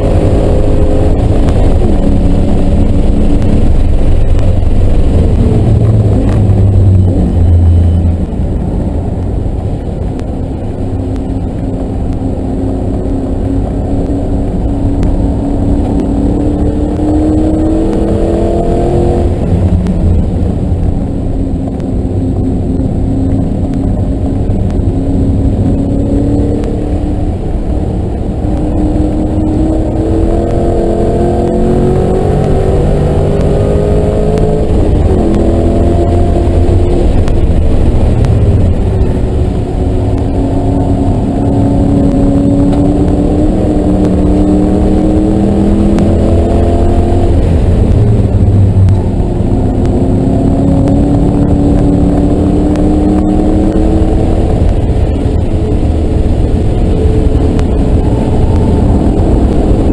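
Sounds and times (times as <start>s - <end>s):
car engine revving: 0.0s - 59.9s
road and tyre noise: 0.0s - 59.9s.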